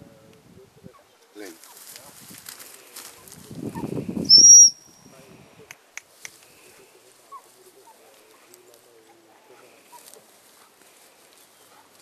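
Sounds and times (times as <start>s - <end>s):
high whistle blast: 4.3s - 5.0s.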